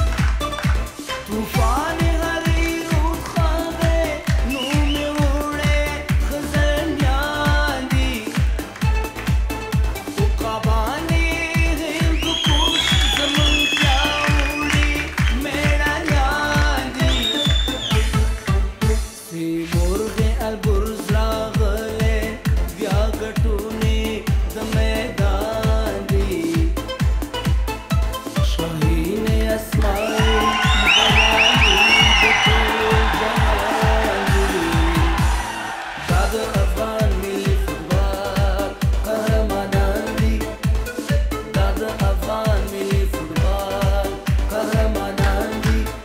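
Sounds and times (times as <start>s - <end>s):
kick-drum beat: 0.0s - 19.1s, 19.8s - 35.5s, 36.1s - 46.0s
dance-pop accompaniment: 0.0s - 46.0s
man singing into microphone: 1.2s - 8.6s, 10.2s - 26.9s, 28.4s - 46.0s
audience cheering: 12.2s - 18.4s, 29.8s - 36.9s.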